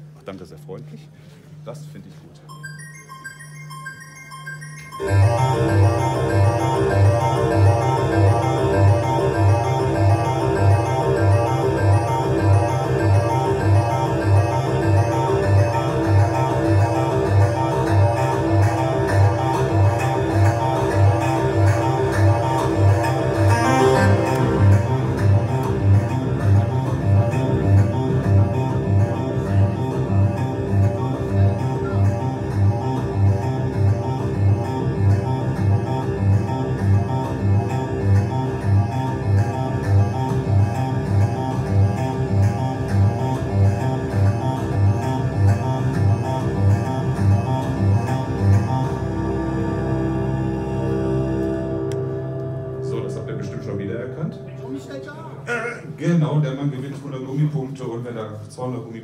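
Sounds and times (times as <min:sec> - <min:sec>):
low synth pulse: 0:02.5 - 0:56.0
synthesizer arpeggio: 0:02.5 - 0:56.6.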